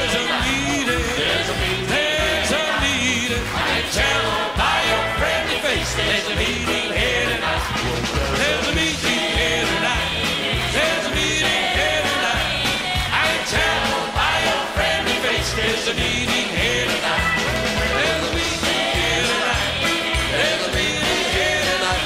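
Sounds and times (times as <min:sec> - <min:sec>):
acoustic guitar: 0:00.0 - 0:22.0
steady drum beat: 0:00.0 - 0:22.0
vocal group singing: 0:00.0 - 0:22.0.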